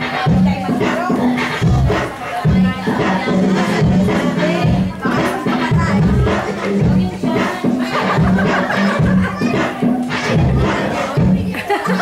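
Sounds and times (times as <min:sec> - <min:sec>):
children shouting: 0:00.0 - 0:12.0
music playing: 0:00.0 - 0:12.0.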